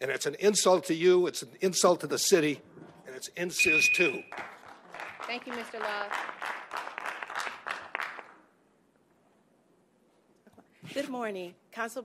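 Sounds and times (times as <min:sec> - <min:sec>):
scattered applause: 0:04.1 - 0:08.5.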